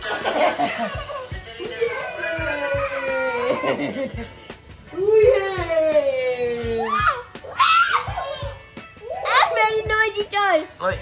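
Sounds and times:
faint music with a beat: 0.0 - 11.0
child screaming playfully: 1.8 - 3.8, 6.8 - 9.8.

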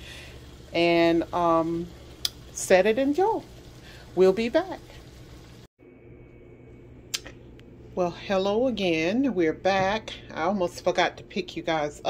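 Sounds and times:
steady low hum: 0.0 - 12.0
thin high whine: 5.8 - 8.7.

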